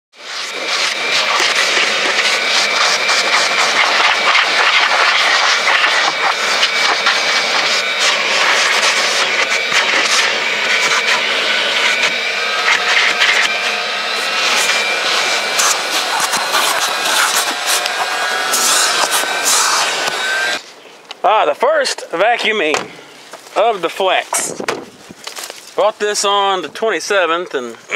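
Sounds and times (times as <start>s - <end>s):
vacuum cleaner whining: 0.2s - 20.8s.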